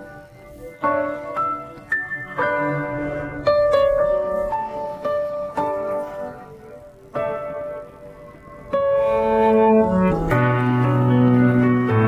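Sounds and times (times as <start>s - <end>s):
piano chords: 0.0s - 12.0s.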